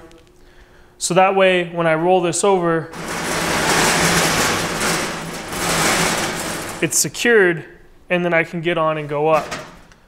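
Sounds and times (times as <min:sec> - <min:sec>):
wheels rolling across floor: 0:03.0 - 0:07.1.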